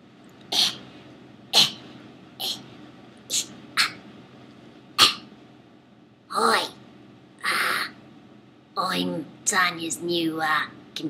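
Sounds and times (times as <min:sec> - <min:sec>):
person making breathy bursts: 0:00.5 - 0:00.9.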